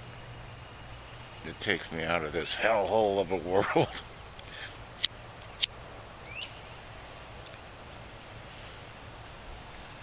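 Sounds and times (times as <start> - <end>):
faint outdoor background: 0.0 - 10.0
small bird chirping: 5.4 - 6.8.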